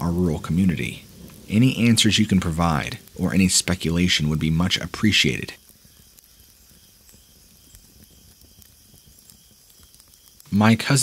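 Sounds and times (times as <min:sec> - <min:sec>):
faint steady hiss: 0:00.0 - 0:11.0
soft ticks: 0:05.6 - 0:10.6.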